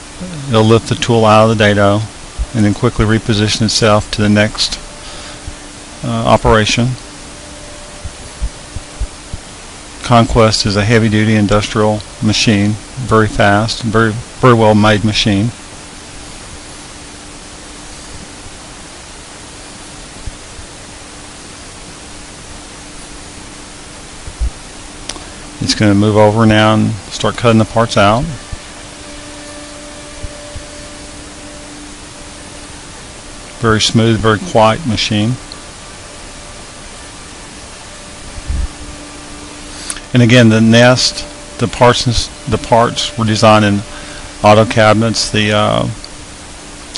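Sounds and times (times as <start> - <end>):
cnc router hiss: 0.0 - 46.9
faint hum: 0.0 - 46.9.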